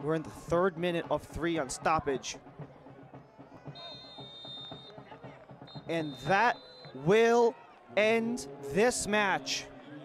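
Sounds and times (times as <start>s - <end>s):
faint stadium crowd noise: 0.0s - 10.0s
referee's whistle blasts: 3.7s - 7.1s.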